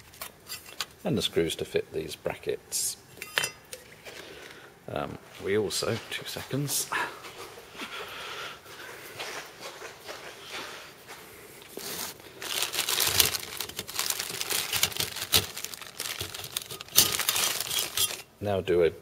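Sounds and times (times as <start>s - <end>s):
cardboard rustling: 11.8s - 18.3s
plastic bags crinkling: 11.8s - 18.4s.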